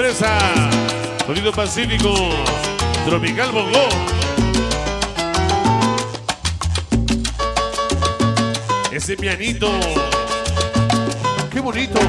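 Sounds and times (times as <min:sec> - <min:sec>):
piano melody: 0:00.0 - 0:06.4, 0:07.2 - 0:09.1, 0:09.7 - 0:12.0
bass line: 0:00.0 - 0:12.0
percussion beat: 0:00.0 - 0:12.0.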